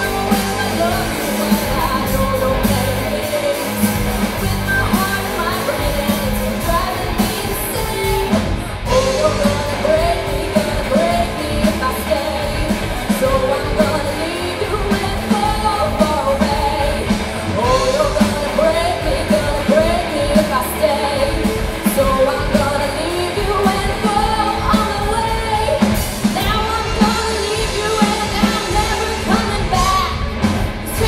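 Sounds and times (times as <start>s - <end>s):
live rock band playing: 0.0s - 31.0s
woman singing: 0.0s - 31.0s.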